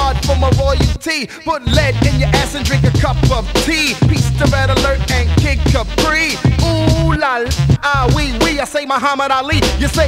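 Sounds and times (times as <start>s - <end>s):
person rapping over bass: 0.0s - 10.0s.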